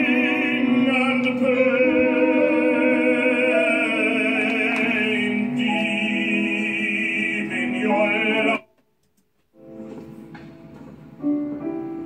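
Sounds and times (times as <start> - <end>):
classical singing with vibrato: 0.0 - 8.8.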